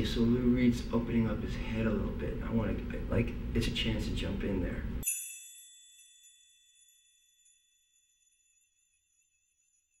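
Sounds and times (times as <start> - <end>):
chime-like ringing tones: 5.0 - 10.0.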